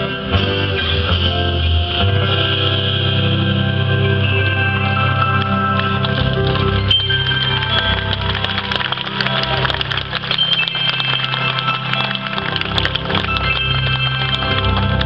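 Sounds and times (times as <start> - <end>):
rock band playing: 0.0 - 15.0.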